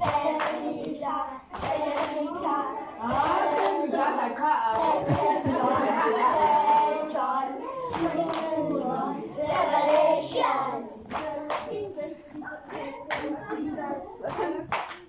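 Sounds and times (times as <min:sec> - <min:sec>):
children clapping: 0:00.0 - 0:15.0
hubbub of children's voices: 0:00.0 - 0:15.0.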